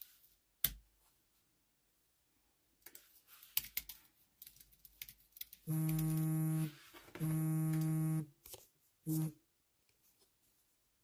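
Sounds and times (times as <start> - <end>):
steady electronic buzz: 5.7 - 8.3, 9.1 - 9.4.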